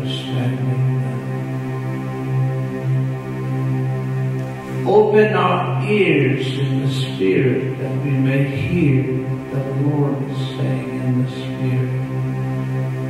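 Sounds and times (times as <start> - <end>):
man singing wordless chant: 0.0 - 1.4, 4.8 - 12.2
electronic keyboard chord: 0.0 - 13.0.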